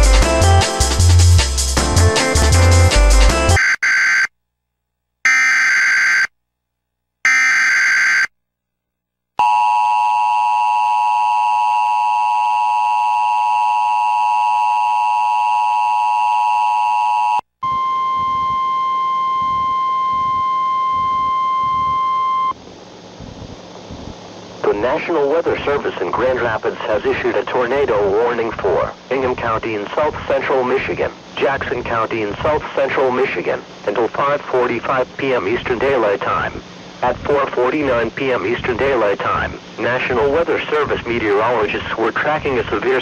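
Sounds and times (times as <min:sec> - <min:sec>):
two-tone attention signal: 0:17.6 - 0:22.6.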